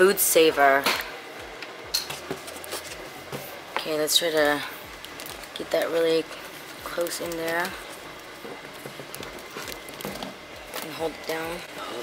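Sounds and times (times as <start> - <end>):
plastic rustling: 2.1 - 12.0.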